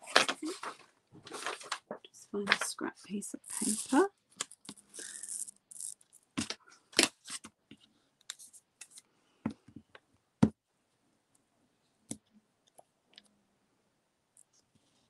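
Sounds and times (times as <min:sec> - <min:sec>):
paper rustling: 0:00.0 - 0:02.7.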